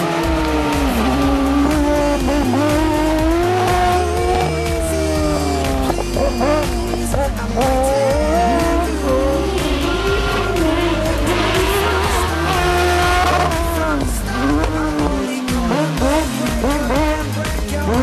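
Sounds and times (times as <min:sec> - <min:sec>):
background music: 0:00.0 - 0:18.0
race car engine revving: 0:00.0 - 0:18.0.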